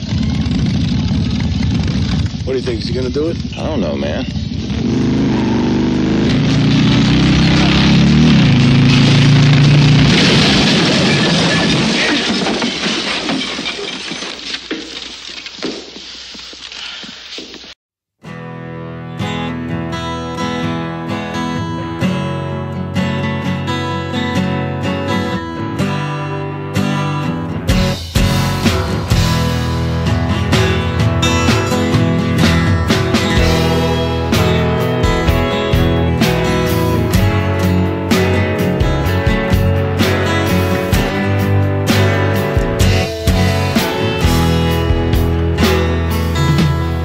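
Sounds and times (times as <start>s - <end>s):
motorcycle engine revving: 0.0s - 11.0s, 31.7s - 47.0s
rock music with guitar: 4.9s - 10.6s, 18.2s - 47.0s.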